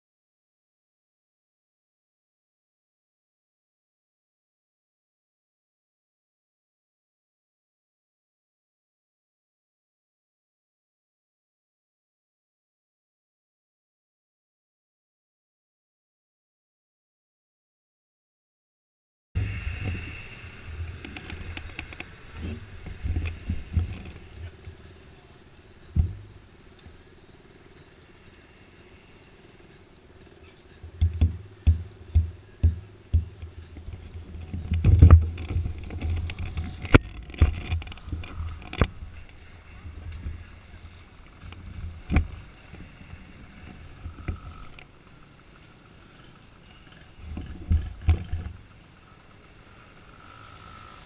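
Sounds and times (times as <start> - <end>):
wind on microphone: 19.4 - 26.6, 30.8 - 44.8
handling noise on microphone: 19.4 - 27.0, 30.6 - 44.9
dirt bike engines idling: 19.4 - 51.0.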